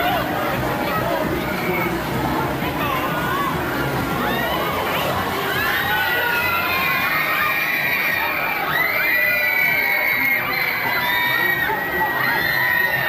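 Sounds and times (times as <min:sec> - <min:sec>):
fairground din: 0:00.0 - 0:13.0
riders screaming: 0:05.5 - 0:13.0.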